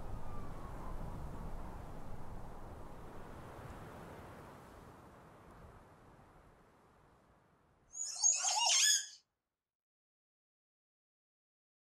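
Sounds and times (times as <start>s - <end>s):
squeaky gliding high pitches: 8.0s - 9.2s.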